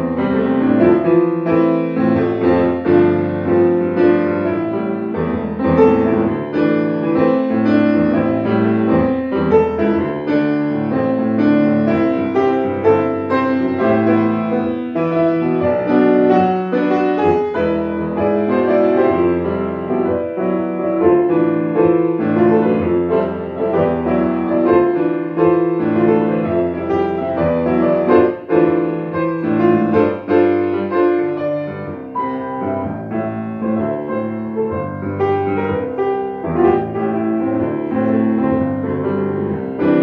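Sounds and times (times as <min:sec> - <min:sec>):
grand piano playing chords: 0:00.0 - 0:40.0.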